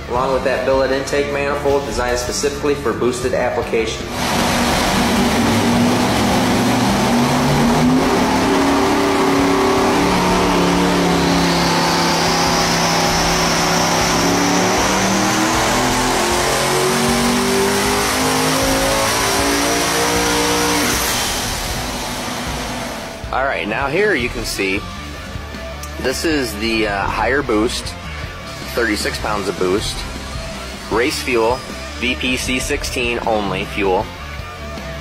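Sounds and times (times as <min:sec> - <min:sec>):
engine running hard: 0:03.9 - 0:35.0
high whine: 0:04.0 - 0:25.2, 0:26.2 - 0:33.8.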